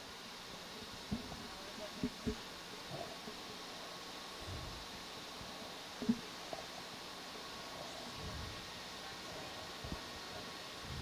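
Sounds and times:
faint low rumbles: 0:00.0 - 0:11.0
low background hiss: 0:00.0 - 0:11.0.

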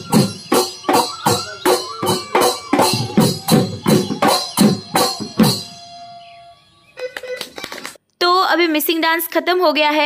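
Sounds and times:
dance music with dhol drums: 0:00.0 - 0:05.8.

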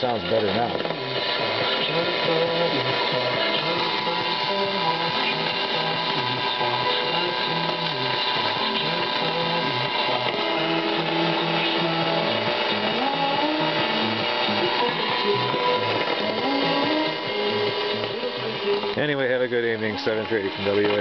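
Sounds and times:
music over radio: 0:00.0 - 0:21.0
radio noise: 0:00.0 - 0:21.0
steady radio tones: 0:00.0 - 0:21.0.

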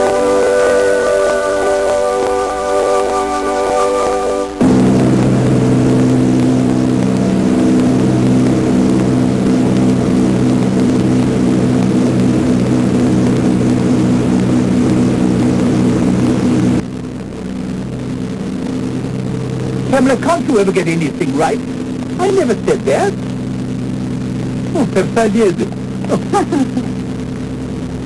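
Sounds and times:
propeller engines droning: 0:00.0 - 0:28.0.

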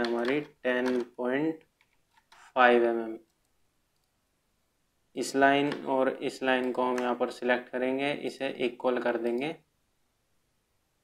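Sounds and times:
keyboard and mouse clicks: 0:00.0 - 0:02.6, 0:05.6 - 0:05.9, 0:06.6 - 0:07.2
person speaking: 0:00.0 - 0:03.5, 0:05.1 - 0:09.7.

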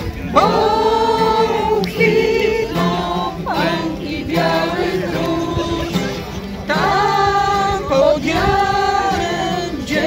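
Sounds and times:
group of people singing: 0:00.0 - 0:10.0.

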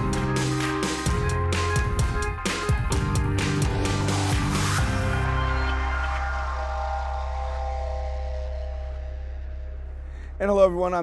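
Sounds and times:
electronic theme music chord: 0:00.0 - 0:11.0.

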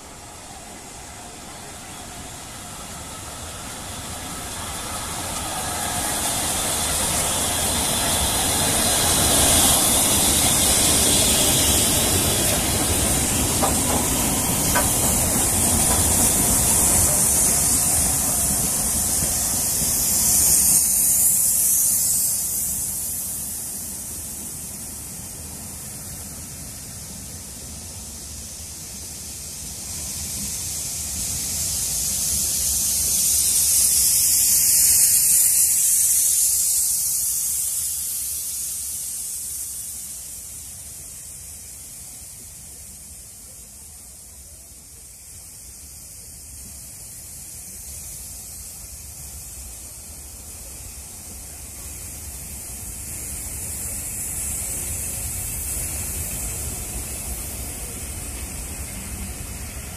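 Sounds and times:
coaches rolling by with hiss: 0:00.0 - 0:59.9
steam locomotives rumbling: 0:00.0 - 0:59.9.

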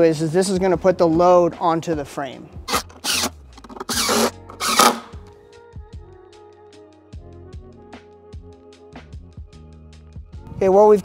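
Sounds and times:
background music: 0:00.0 - 0:11.0
impact driver driving screw: 0:02.7 - 0:05.3.

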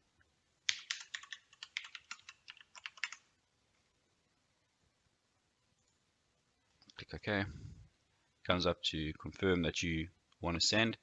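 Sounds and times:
typing on keyboard: 0:00.7 - 0:03.3.

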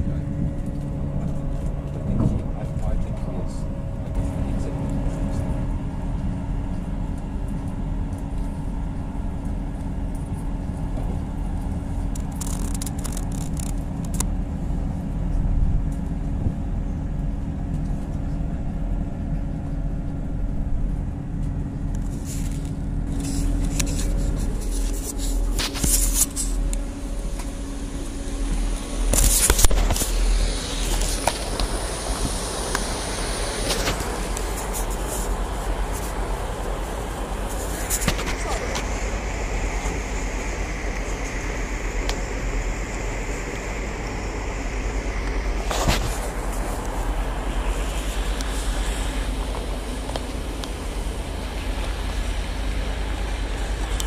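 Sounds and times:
train clicks and knocks: 0:00.0 - 0:14.3
low engine hum: 0:00.0 - 0:54.0
train interior rumble: 0:00.0 - 0:54.0.

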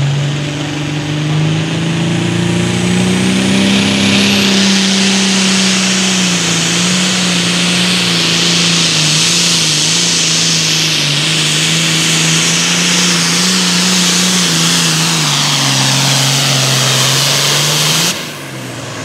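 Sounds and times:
quieter engine rumble: 0:00.0 - 0:19.0
tractor diesel engine at full power: 0:00.0 - 0:19.0.

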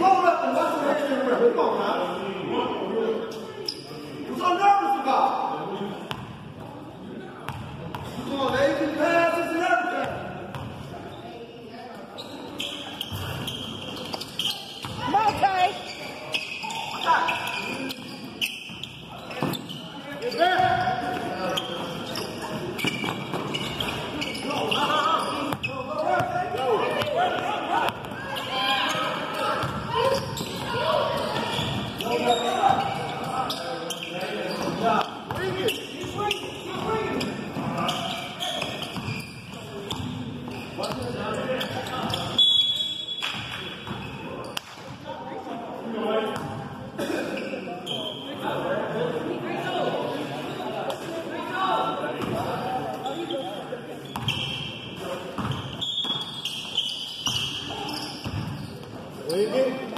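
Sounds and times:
whistle: 0:42.4 - 0:43.4.

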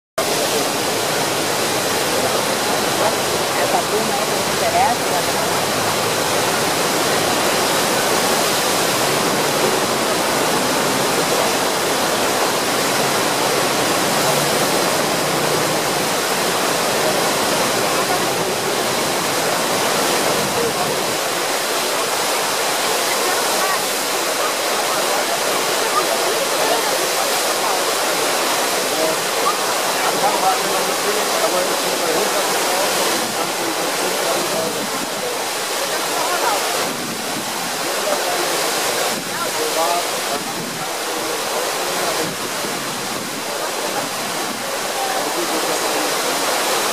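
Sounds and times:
faint voices: 0:00.2 - 0:46.9
rushing whitewater: 0:00.2 - 0:46.9.

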